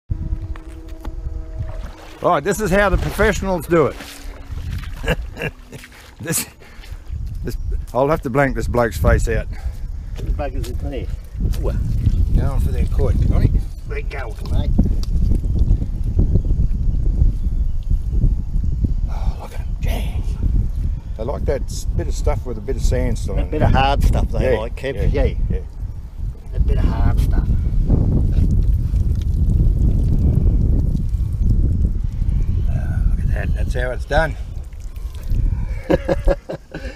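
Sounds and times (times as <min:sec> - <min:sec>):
wind rumble on microphone: 0:00.1 - 0:36.9
hands digging in wet mud: 0:02.9 - 0:07.1
person chuckling: 0:04.9 - 0:06.6, 0:35.6 - 0:36.9.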